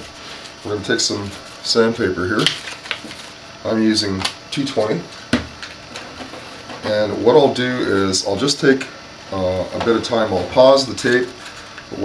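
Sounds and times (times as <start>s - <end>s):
person speaking: 6.8s - 12.0s.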